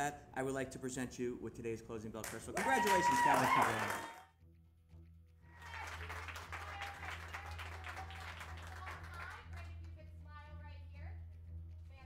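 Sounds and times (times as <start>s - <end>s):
audience applause: 2.2s - 4.2s, 5.6s - 9.8s
faint music: 5.4s - 12.0s.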